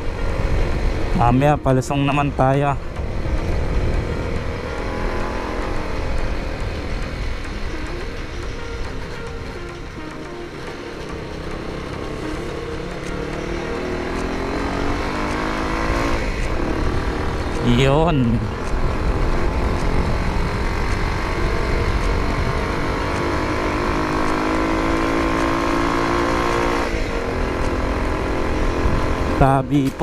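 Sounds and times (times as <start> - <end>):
motorcycle engine running: 0.0 - 30.0
wind rumble on microphone: 2.8 - 4.9.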